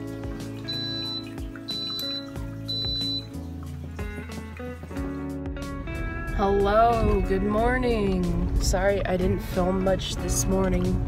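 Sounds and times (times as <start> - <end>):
music with steady beat: 0.0 - 7.5
coffee maker beeps: 0.7 - 3.4.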